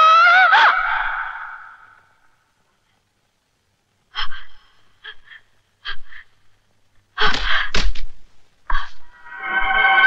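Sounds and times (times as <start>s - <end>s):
woman screaming: 0.0s - 1.7s.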